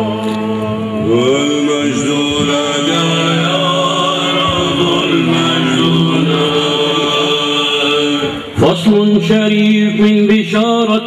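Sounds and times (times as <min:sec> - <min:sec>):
voices chanting over drone: 0:00.0 - 0:10.6.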